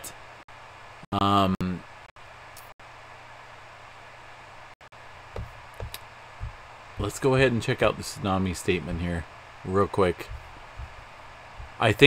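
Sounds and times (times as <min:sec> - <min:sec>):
faint microphone hiss: 0:00.0 - 0:12.0
soft low thumps: 0:05.3 - 0:08.2, 0:10.1 - 0:12.0.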